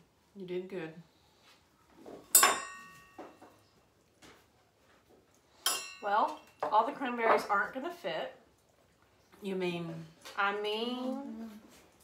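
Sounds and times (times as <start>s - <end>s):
glass clinking: 2.3s - 3.6s, 5.6s - 6.7s.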